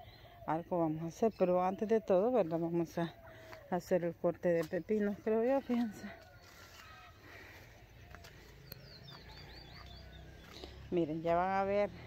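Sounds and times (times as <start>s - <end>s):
small bird chirping: 8.1s - 11.1s.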